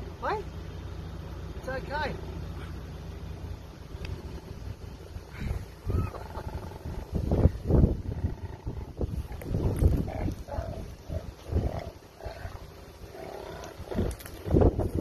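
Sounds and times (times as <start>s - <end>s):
koala growling: 5.2s - 14.5s.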